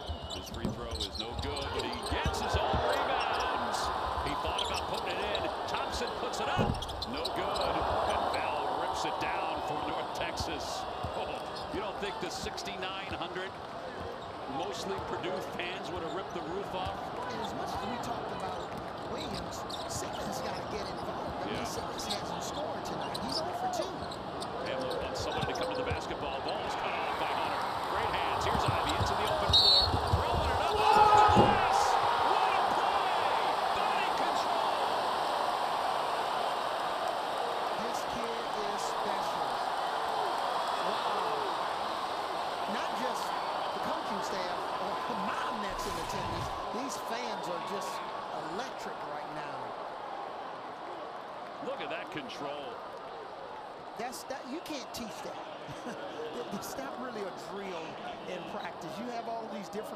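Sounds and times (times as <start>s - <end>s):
crowd voices in arena: 0.0s - 59.9s
basketball bouncing on court: 6.6s - 7.7s, 28.4s - 31.7s.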